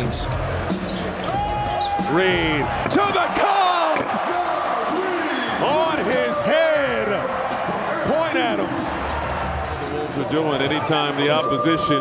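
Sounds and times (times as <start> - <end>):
crowd noise: 0.0 - 12.0
people shouting excitedly: 2.9 - 7.0.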